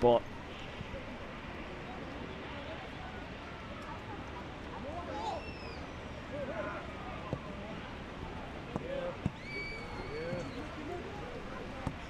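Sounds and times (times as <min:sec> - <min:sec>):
distant players shouting: 0:04.9 - 0:12.0.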